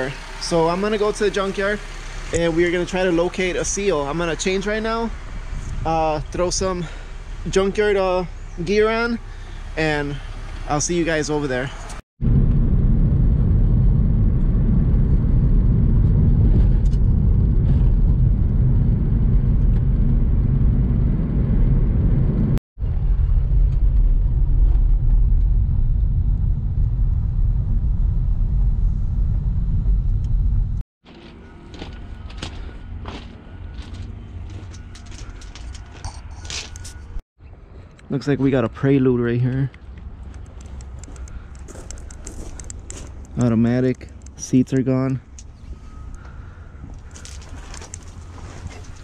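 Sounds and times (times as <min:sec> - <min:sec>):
car cabin road rumble: 0:00.0 - 0:37.2, 0:38.1 - 0:49.0
footsteps on gravel: 0:31.1 - 0:37.2, 0:40.6 - 0:43.8, 0:46.9 - 0:49.0.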